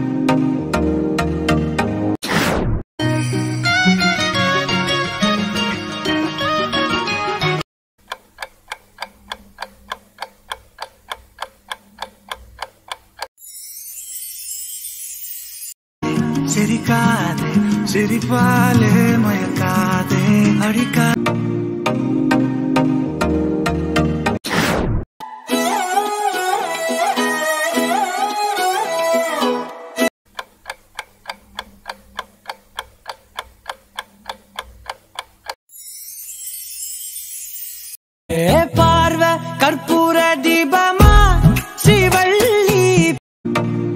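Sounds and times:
clock-like ticking: 8.0 - 13.3, 30.3 - 35.6.

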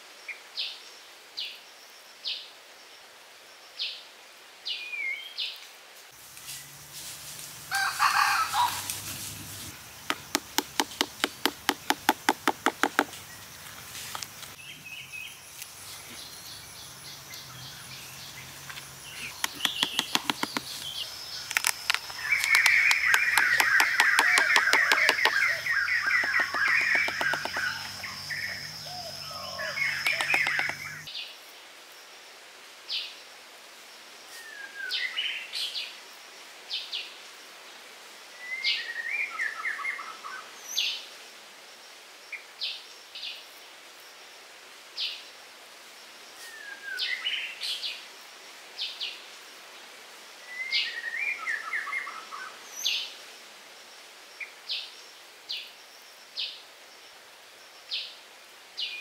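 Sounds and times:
birds chirping and singing: 14.5 - 31.1.

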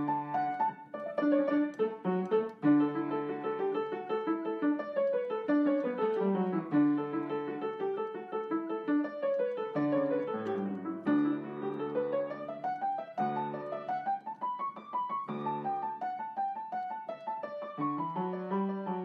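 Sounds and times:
solo piano music: 0.0 - 19.0.

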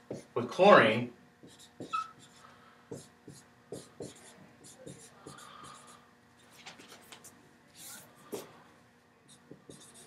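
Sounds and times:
marker scratching on whiteboard: 0.1 - 0.3, 1.4 - 8.5, 9.3 - 10.0.

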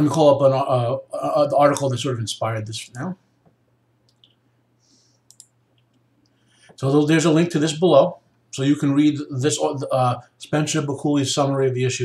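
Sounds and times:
low steady hum: 0.0 - 12.0
faint computer mouse clicks: 3.4 - 4.4, 5.2 - 6.4.

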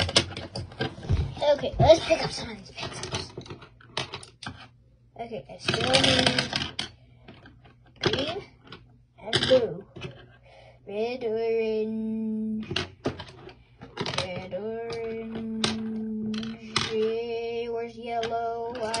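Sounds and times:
colored pencils clicking and clattering: 0.0 - 4.8, 5.6 - 10.4, 12.6 - 19.0.

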